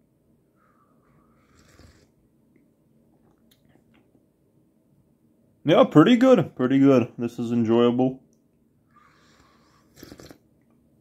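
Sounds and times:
soft slurp of coffee: 0:01.4 - 0:02.1, 0:09.0 - 0:10.4.

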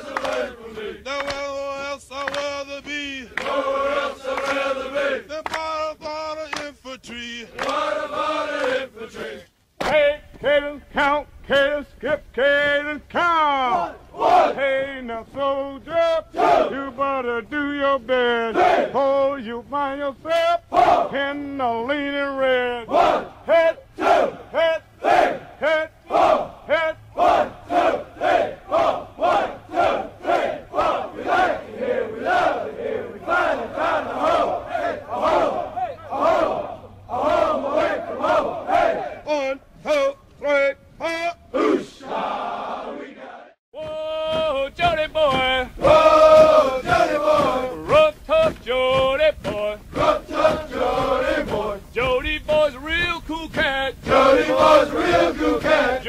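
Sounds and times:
men chanting in unison: 0:00.0 - 0:56.0.

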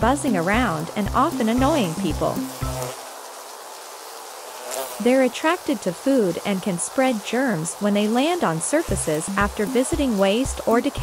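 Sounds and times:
housefly buzzing: 0:00.0 - 0:11.0.

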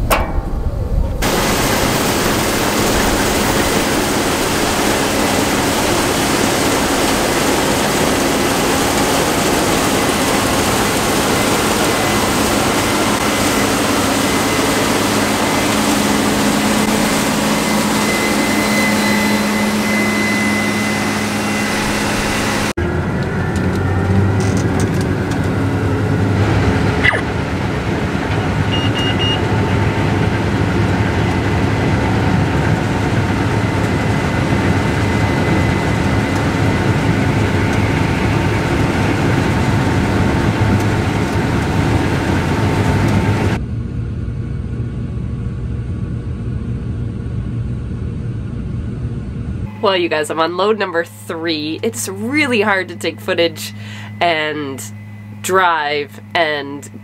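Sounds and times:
combine harvester engine drone: 0:00.0 - 0:57.0
engine hum inside cab: 0:00.0 - 0:57.0.

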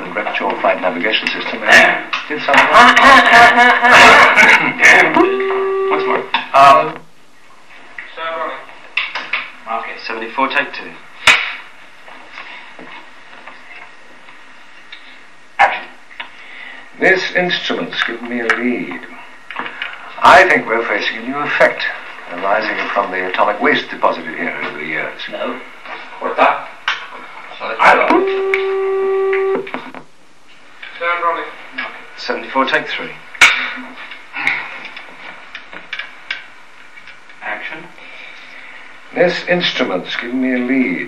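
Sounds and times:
faint small noises: 0:04.0 - 0:41.0
steady tone: 0:04.9 - 0:06.7, 0:28.1 - 0:30.0
steady hiss: 0:29.6 - 0:41.0.

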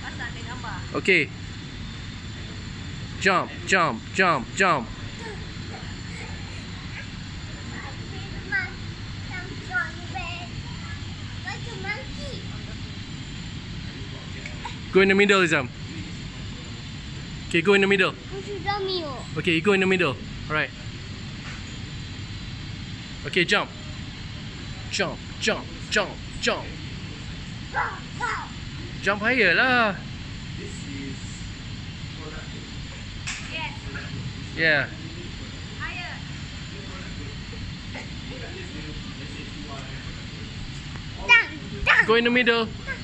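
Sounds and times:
shop hall hiss and hum: 0:00.0 - 0:43.0.

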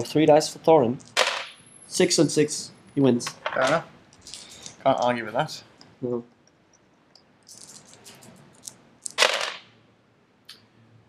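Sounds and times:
dice clattering on a board: 0:01.1 - 0:01.5, 0:08.6 - 0:09.7
dice rattling in a hand: 0:07.4 - 0:09.7.

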